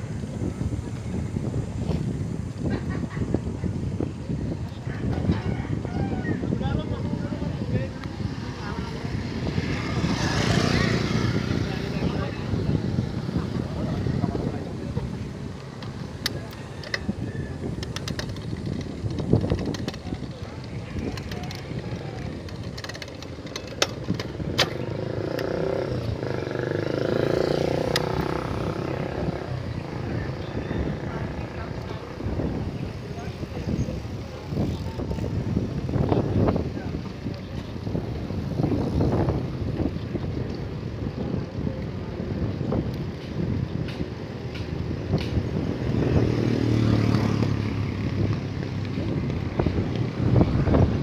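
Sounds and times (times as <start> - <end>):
passing motor traffic: 0.0 - 51.0
road noise: 0.0 - 51.0
wind rumbling on microphone: 0.0 - 51.0.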